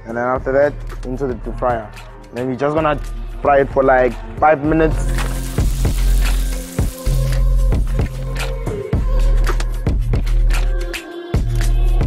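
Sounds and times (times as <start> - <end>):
background music: 0.0 - 12.0
oil sizzling in deep fryer: 5.1 - 8.1.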